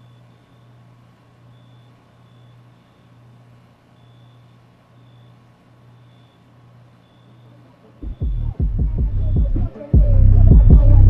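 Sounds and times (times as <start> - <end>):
faint high beeps: 0.0 - 11.0
steady low hum: 0.0 - 11.0
deep rapid thumping: 8.0 - 11.0.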